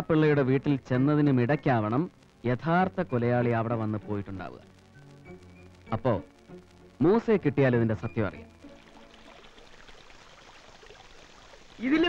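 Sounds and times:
man speaking: 5.9s - 6.3s, 7.0s - 8.4s, 11.8s - 12.0s
water falling from fountain: 8.7s - 12.0s.

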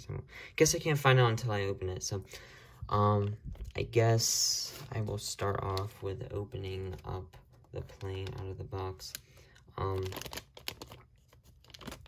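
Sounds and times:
plastic bag crinkling: 7.8s - 12.0s.

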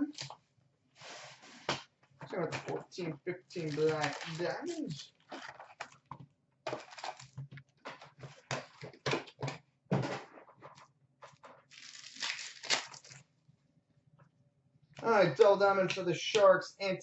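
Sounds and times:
card packs rustling and crinkling: 3.6s - 6.0s, 6.7s - 10.8s.

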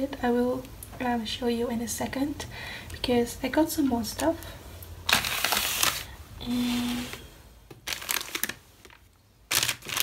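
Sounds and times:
paper bag rustling and crinkling: 5.1s - 7.2s, 7.8s - 10.0s.

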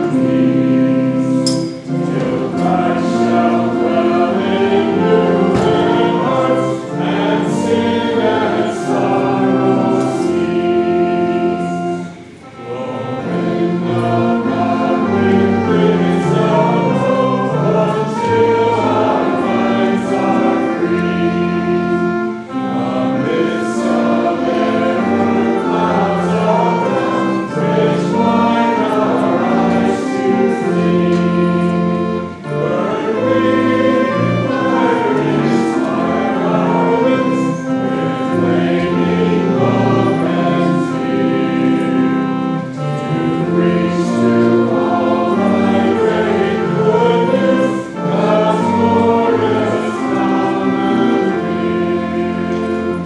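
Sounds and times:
group singing worship song: 0.0s - 53.0s.

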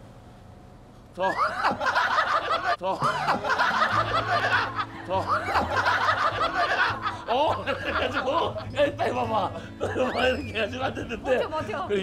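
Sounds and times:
group of people laughing: 1.3s - 12.0s.

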